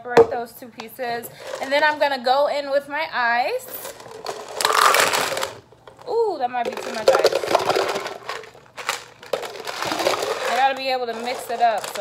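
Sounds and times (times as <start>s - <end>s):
ice cubes clinking in plastic cups: 3.7s - 12.0s.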